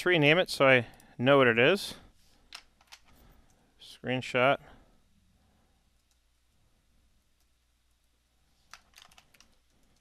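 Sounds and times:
keyboard typing: 8.7 - 10.0.

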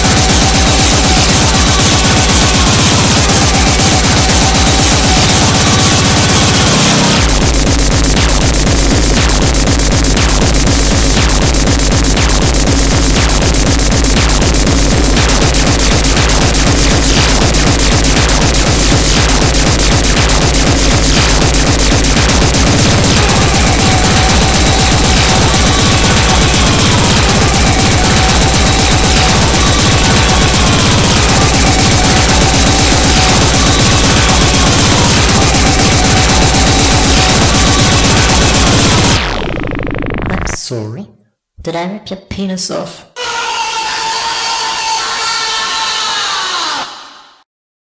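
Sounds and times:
fast kick drums: 0.0 - 40.4
loud electronic noise: 0.0 - 40.7.

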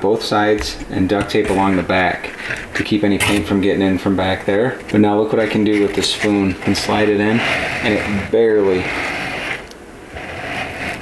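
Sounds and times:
cardboard rubbing and scraping: 1.0 - 3.7, 5.0 - 11.0.

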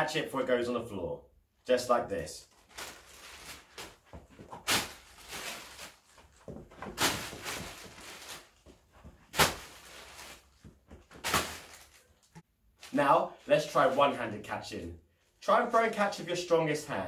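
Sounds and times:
plastic bag crackling: 2.5 - 14.1.

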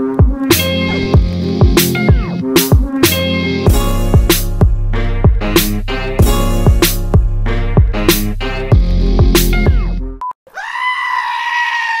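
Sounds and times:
goat bleating: 10.5 - 12.0.

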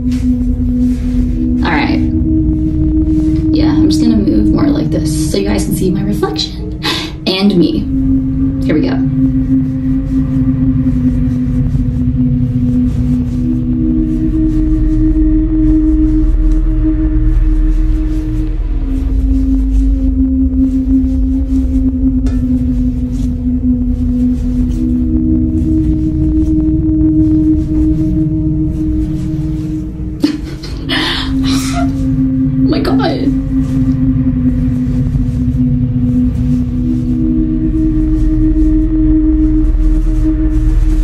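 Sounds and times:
eerie ambient drone music: 0.0 - 41.0
low rumble: 0.0 - 41.0.

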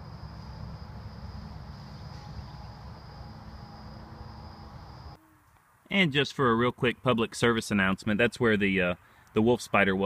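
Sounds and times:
high-pitched insect trill: 0.0 - 5.2.

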